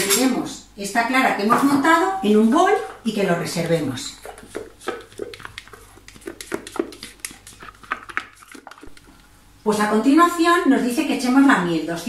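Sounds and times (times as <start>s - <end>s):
spatula scraping metal bowl: 4.2s - 9.0s.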